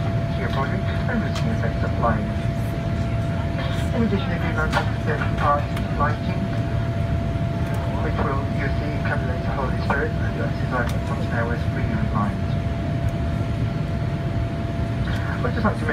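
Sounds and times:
airplane cabin engine rumble: 0.0 - 15.9
cabin announcement speech: 0.0 - 15.9.

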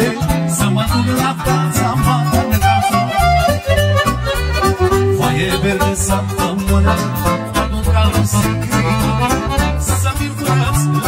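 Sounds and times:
bass and rhythm accompaniment: 0.0 - 11.0
violin and accordion melody: 0.0 - 11.0.

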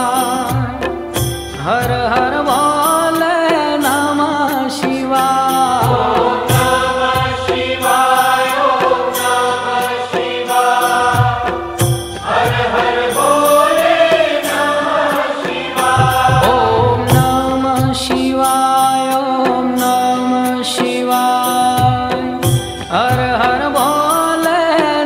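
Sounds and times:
devotional chanting with music: 0.0 - 25.0
low drum beats: 5.8 - 7.8, 15.4 - 18.6.

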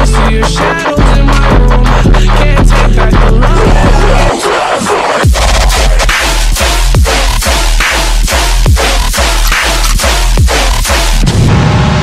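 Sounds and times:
deep kick drums: 0.0 - 4.3, 5.2 - 11.5
dubstep electronic music: 0.0 - 11.9.

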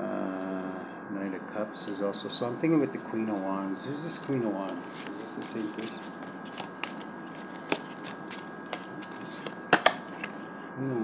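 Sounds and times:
cards being shuffled: 4.1 - 10.5
card snaps: 7.6 - 10.4.

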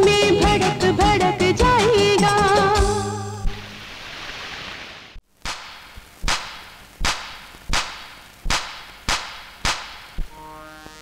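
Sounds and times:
whip-crack percussion beat: 5.4 - 10.3.

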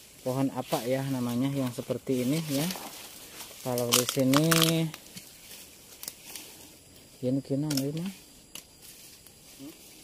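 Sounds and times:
rustling leaves: 0.0 - 10.0.

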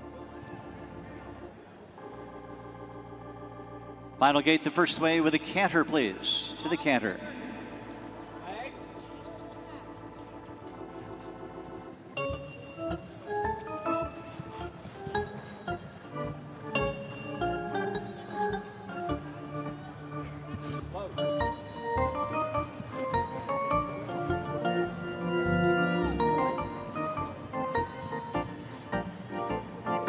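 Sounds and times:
arena music: 0.0 - 30.0.

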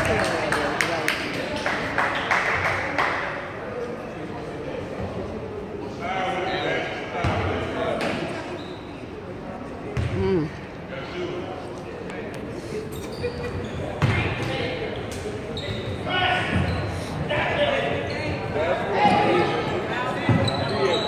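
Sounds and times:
spectators' indistinct voices: 0.0 - 21.0.

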